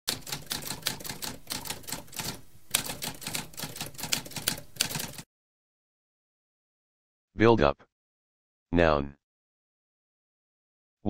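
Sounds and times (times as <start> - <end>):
typewriter keys clicking: 0.1 - 5.2.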